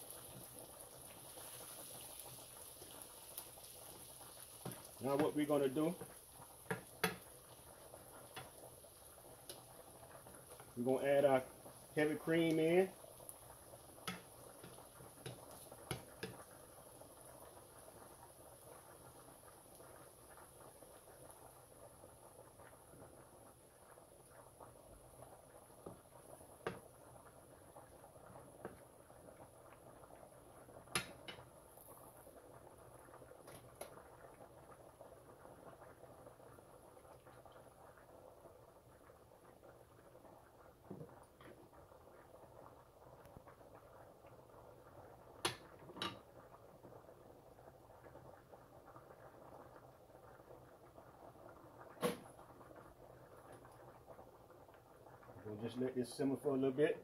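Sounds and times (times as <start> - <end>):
cream simmering in skillet: 0.0 - 57.0
wooden spoon tapping pan: 6.7 - 7.2, 14.0 - 16.4.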